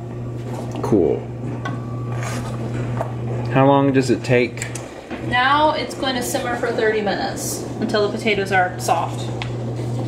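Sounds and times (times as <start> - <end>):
clothes dryer humming: 0.0 - 10.0.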